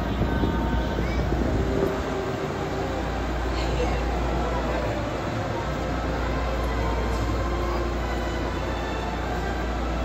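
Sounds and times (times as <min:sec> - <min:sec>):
monorail train humming: 0:00.0 - 0:10.0
murmur of crowd: 0:00.0 - 0:10.0.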